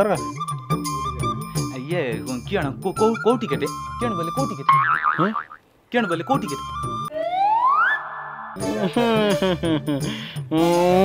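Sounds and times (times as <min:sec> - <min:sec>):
cartoon boing sound effect: 0:04.7 - 0:05.6.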